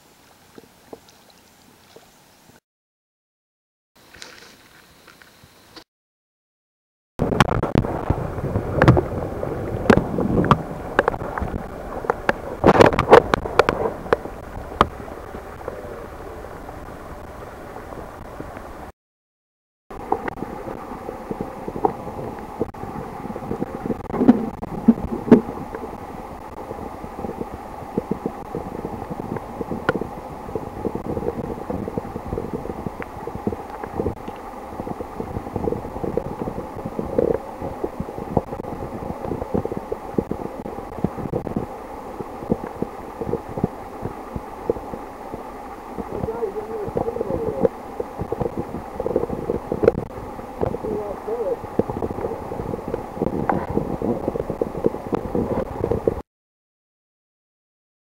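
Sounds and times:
dull underwater rumble: 0:07.2 - 0:18.9, 0:19.9 - 0:56.2.

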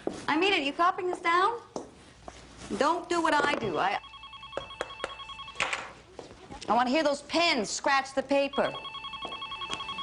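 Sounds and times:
electronic telephone ringing: 0:03.9 - 0:06.0, 0:08.4 - 0:10.0.

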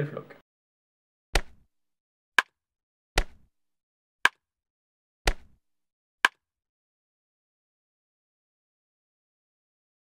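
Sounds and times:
dull thud: 0:05.3 - 0:05.6.

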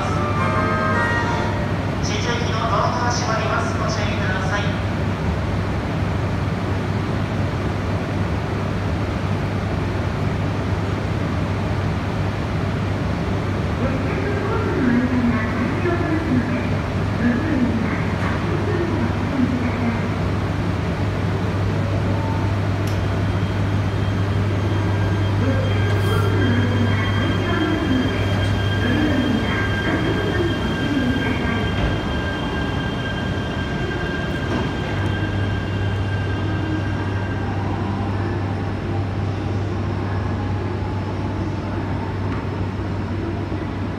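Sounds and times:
train electrical hum: 0:00.0 - 0:43.9.

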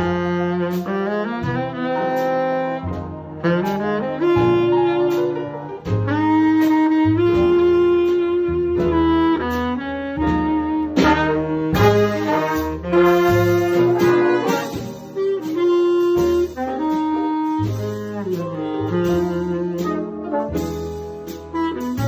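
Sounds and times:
baritone saxophone: 0:00.0 - 0:22.0
jazz big band playing: 0:00.0 - 0:22.0.

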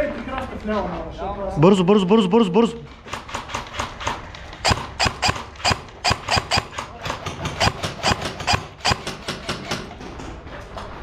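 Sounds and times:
airsoft gun shots: 0:04.6 - 0:09.8.

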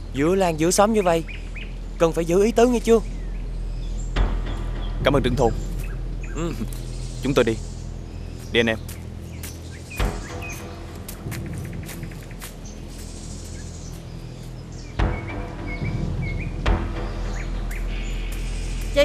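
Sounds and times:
background music with low notes: 0:00.0 - 0:19.0
birds chirping: 0:00.0 - 0:19.0.

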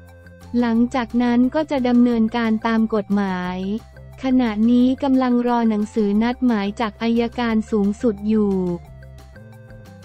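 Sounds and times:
soft background music: 0:00.0 - 0:10.0
person speaking: 0:00.6 - 0:08.8.

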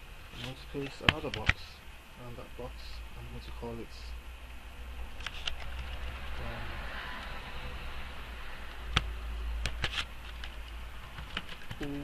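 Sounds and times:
low electrical hum: 0:00.0 - 0:12.0
keyboard and mouse clicks: 0:00.4 - 0:01.6, 0:08.7 - 0:12.0.

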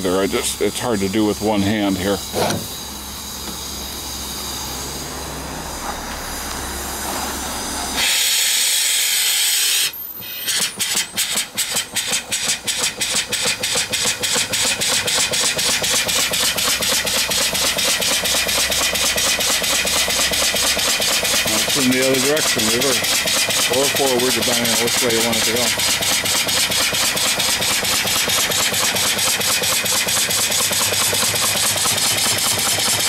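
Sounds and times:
loud steam hiss: 0:00.0 - 0:33.0
steam engine exhaust chuffing: 0:00.0 - 0:33.0
steam engine running: 0:00.0 - 0:33.0.

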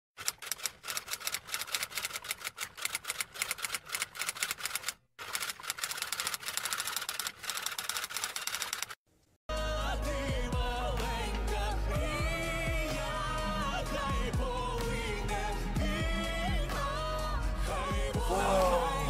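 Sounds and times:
rapid keyboard typing: 0:00.2 - 0:09.0
pop music with singing: 0:09.5 - 0:19.0.

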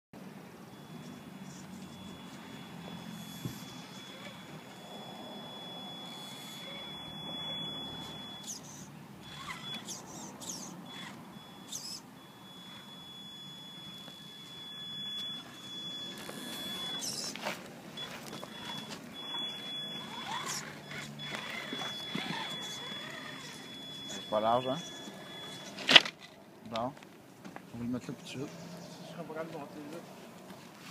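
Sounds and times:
rc truck motor whining: 0:00.7 - 0:26.4.

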